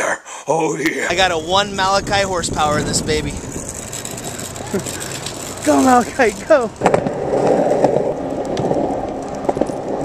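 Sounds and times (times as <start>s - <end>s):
skateboard wheels rolling on pavement: 1.1s - 10.0s.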